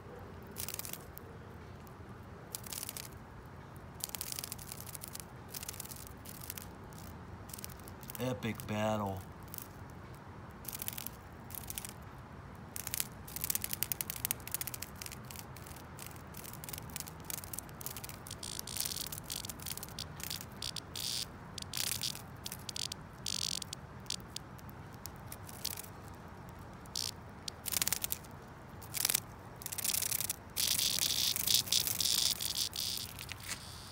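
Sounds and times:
cicada distress buzz: 0:04.0 - 0:09.8, 0:12.7 - 0:33.9.

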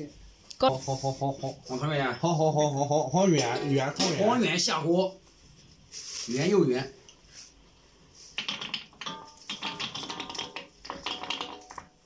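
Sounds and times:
rice balls clattering into wok: 0:08.4 - 0:11.9.

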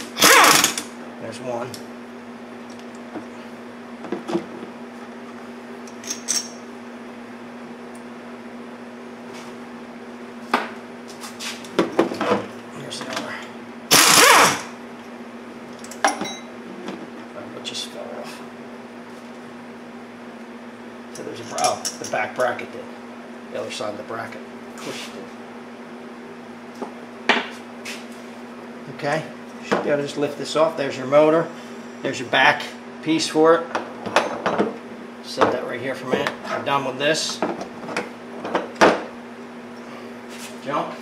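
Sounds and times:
pneumatic impact wrench: 0:00.0 - 0:00.9, 0:13.9 - 0:14.7
steady hum: 0:00.0 - 0:41.0
metal tools clinking: 0:05.9 - 0:06.6.

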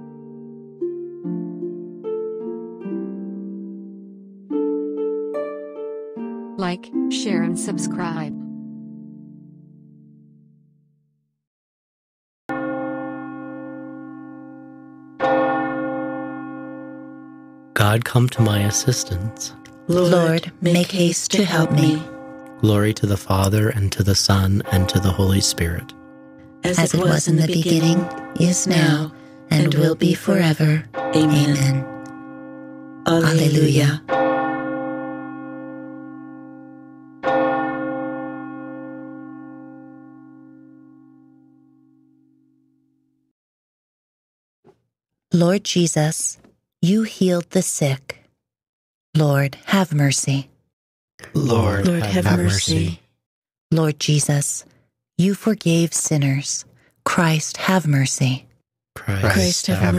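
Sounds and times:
bell ringing: 0:12.5 - 0:42.0, 0:51.6 - 0:52.9.

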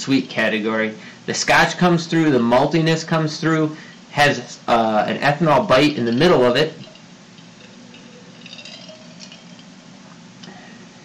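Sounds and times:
ice clicking against glass: 0:06.2 - 0:09.8.

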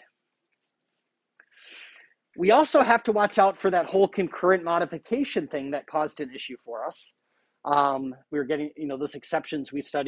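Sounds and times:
man breathing in: 0:01.5 - 0:02.1.

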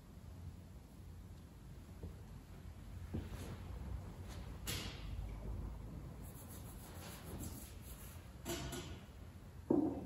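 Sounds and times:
low steady rumble: 0:00.0 - 0:08.3
rustling and cloth movement: 0:03.0 - 0:04.5.

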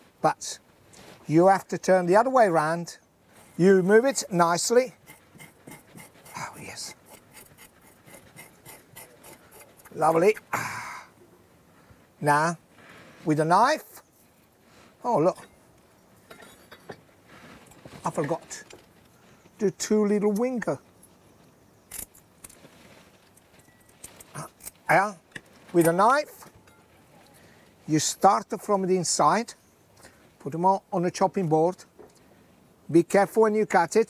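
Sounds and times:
knife scraping fish scales: 0:03.5 - 0:10.2.

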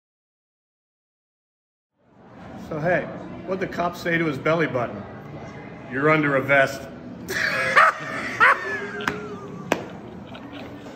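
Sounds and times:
man laughing: 0:07.3 - 0:10.4.

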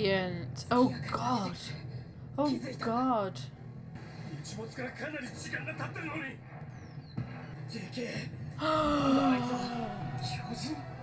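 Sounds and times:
person shouting: 0:08.6 - 0:10.0.

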